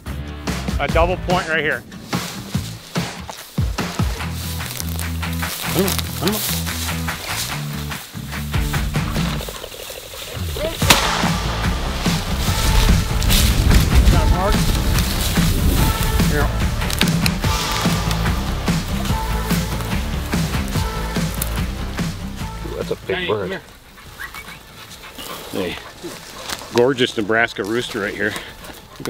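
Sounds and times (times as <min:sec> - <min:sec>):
background music: 0:00.0 - 0:24.6
shotgun shot: 0:10.8 - 0:13.5.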